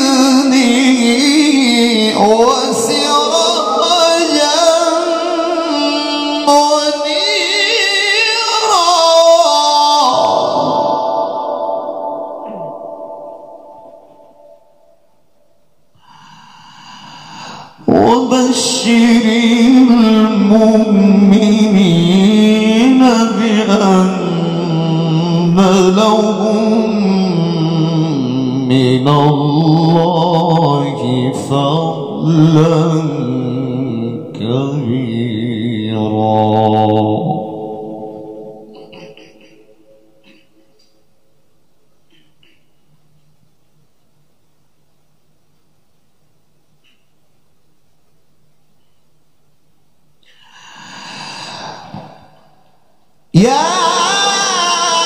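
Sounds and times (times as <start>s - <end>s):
man reciting melodically: 0.0s - 14.5s, 16.0s - 41.0s, 53.3s - 55.0s
deep in-breath into microphone: 16.0s - 17.8s, 50.2s - 52.9s.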